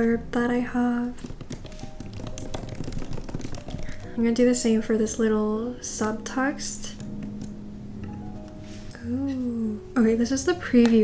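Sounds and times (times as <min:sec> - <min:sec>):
faint background music: 0:00.0 - 0:11.0
rapid keyboard typing: 0:01.0 - 0:04.2, 0:06.9 - 0:07.6.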